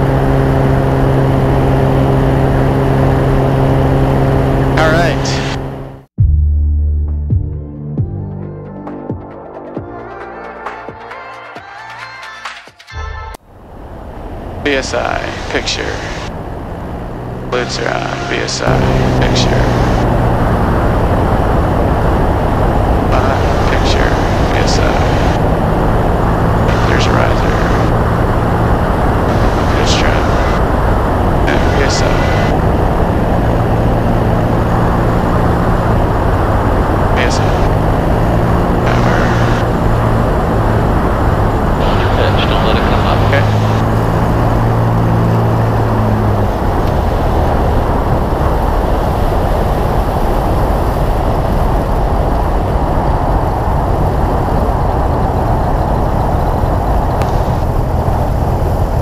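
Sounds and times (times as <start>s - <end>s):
propeller airplane engine drone: 0.0s - 6.2s, 13.4s - 59.0s
heavy wind rush: 13.5s - 59.0s.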